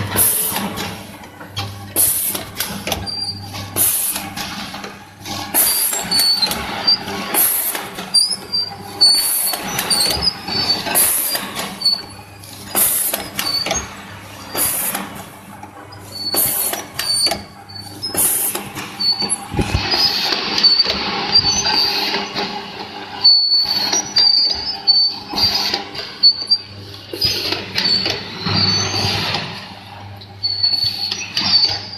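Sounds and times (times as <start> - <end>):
light machine clatter: 0.0 - 31.9
machine hum: 0.0 - 31.9
packing machine sealing stroke: 2.0 - 22.5
short high squeaks: 8.2 - 13.8, 16.0 - 22.1, 23.2 - 29.4, 30.4 - 31.9.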